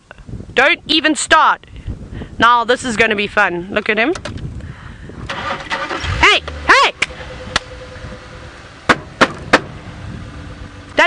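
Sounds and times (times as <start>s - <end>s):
vehicle engine starting and running: 5.1s - 11.0s.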